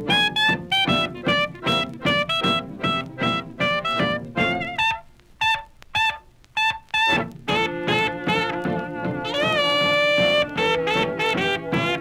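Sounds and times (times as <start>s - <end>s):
jazz band playing: 0.0s - 12.0s.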